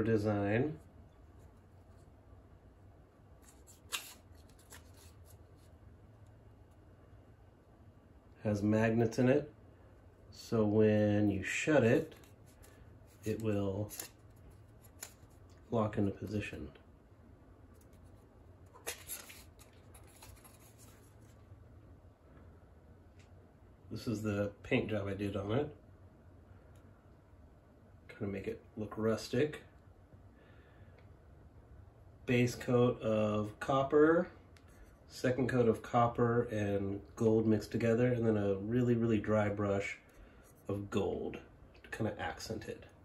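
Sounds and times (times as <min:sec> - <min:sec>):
light clicks and rubs: 0:03.4 - 0:06.8, 0:11.9 - 0:15.8, 0:17.7 - 0:21.5.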